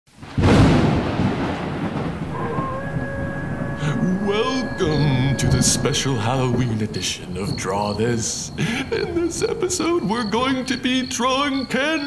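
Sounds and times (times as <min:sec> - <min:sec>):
thunderclap rumbling: 0:00.2 - 0:07.6
steady held tones: 0:02.2 - 0:07.4.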